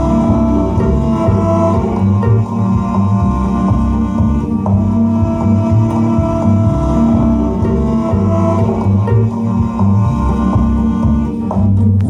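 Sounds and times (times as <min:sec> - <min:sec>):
cello: 0:00.0 - 0:12.0
plucked upright bass: 0:00.0 - 0:12.0.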